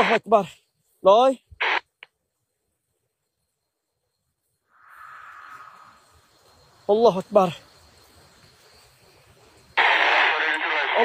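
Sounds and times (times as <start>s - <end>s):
loud narrow-band radio hiss: 0.0s - 0.4s, 1.6s - 2.0s, 9.8s - 11.0s.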